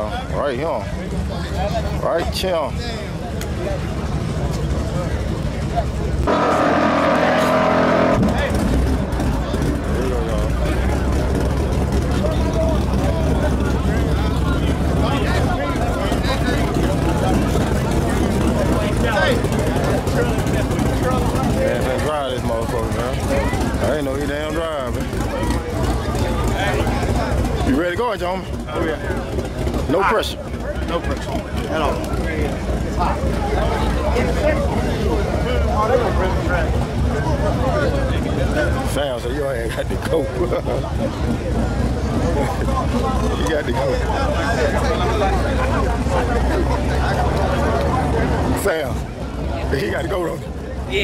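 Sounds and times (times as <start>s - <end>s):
car engines rumbling: 0.0s - 51.0s
crowd chatter: 0.0s - 51.0s
loud engine blast: 6.1s - 39.0s.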